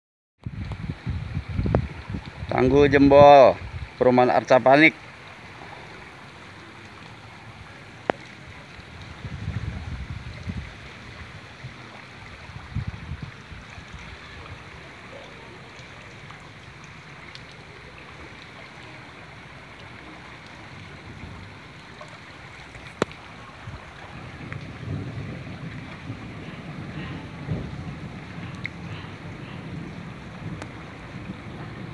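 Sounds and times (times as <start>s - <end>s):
wind rumble on microphone: 0.4s - 4.1s, 7.5s - 15.0s, 20.7s - 21.8s, 22.5s - 31.9s
floodwater rushing down street: 0.4s - 31.9s.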